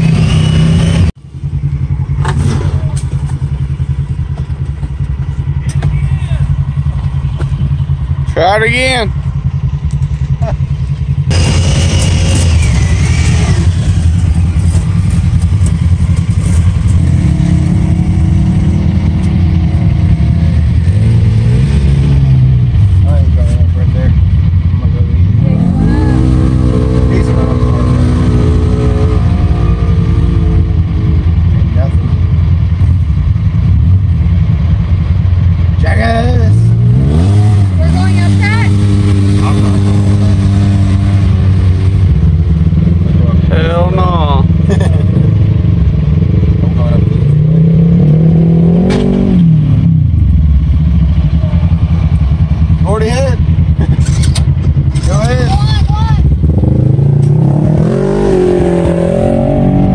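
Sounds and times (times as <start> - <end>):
engine revving: 0.0 - 3.4, 11.2 - 59.9.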